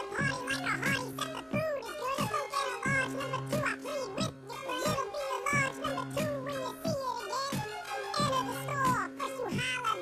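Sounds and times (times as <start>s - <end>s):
high-pitched rapping over a beat: 0.0s - 10.0s.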